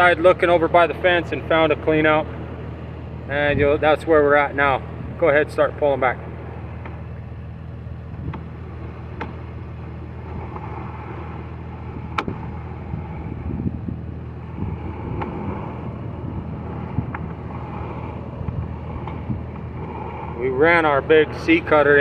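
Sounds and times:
low motor hum: 0:00.0 - 0:22.0.

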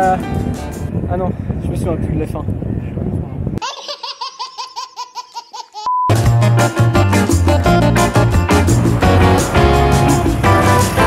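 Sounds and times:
short steady beep: 0:05.9 - 0:06.1
loud music with heavy bass: 0:06.1 - 0:11.0.

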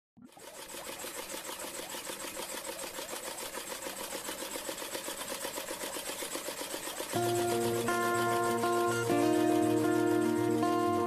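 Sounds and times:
fast mechanical clatter: 0:00.2 - 0:11.0.

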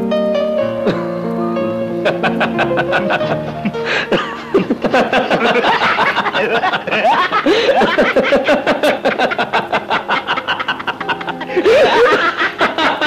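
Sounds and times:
film music: 0:00.0 - 0:13.0
men laughing: 0:02.0 - 0:13.0.

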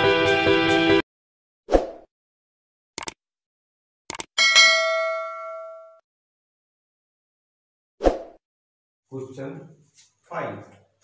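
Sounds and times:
notification bell ding: 0:04.4 - 0:06.0.

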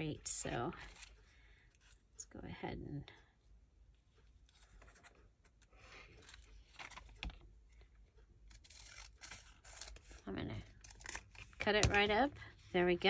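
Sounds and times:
paper rustling: 0:04.5 - 0:07.4
scissors snipping paper: 0:08.4 - 0:11.8.

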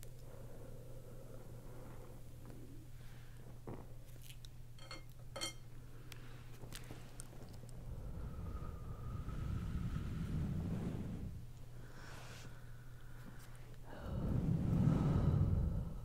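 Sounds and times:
small clicks and crackles: 0:06.1 - 0:07.8
low rumble of moving air: 0:07.6 - 0:13.0, 0:13.8 - 0:16.0.

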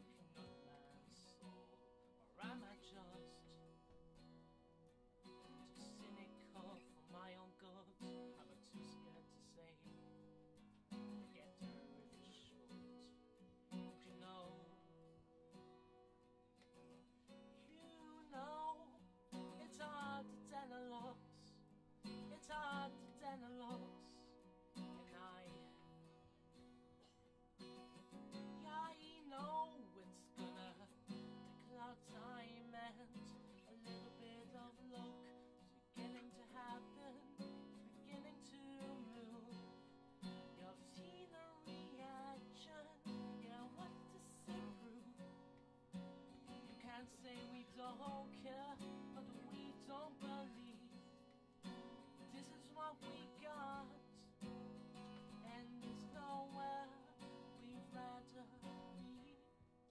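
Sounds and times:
man singing: 0:00.0 - 0:03.7, 0:05.6 - 0:10.0, 0:11.2 - 0:13.2, 0:13.8 - 0:15.0, 0:17.6 - 0:25.9, 0:28.3 - 0:45.3, 0:46.7 - 0:51.2, 0:52.2 - 0:54.3, 0:55.4 - 0:59.4
acoustic guitar strummed and picked: 0:00.0 - 0:59.9.

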